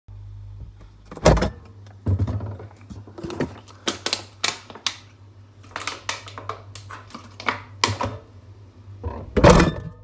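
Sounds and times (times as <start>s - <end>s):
refrigerator door opening: 1.1s - 2.6s, 9.0s - 10.0s.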